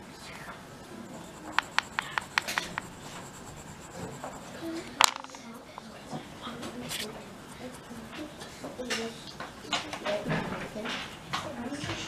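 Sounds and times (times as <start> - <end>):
pastel scratching on paper: 0.2 - 8.7.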